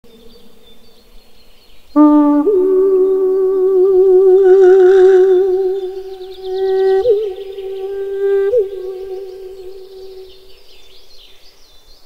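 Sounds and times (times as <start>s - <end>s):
man humming a long note: 2.0s - 10.9s.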